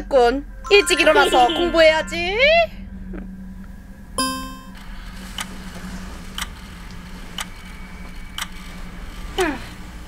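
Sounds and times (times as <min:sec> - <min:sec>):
short bright musical note: 0:00.7 - 0:02.4, 0:04.2 - 0:04.8.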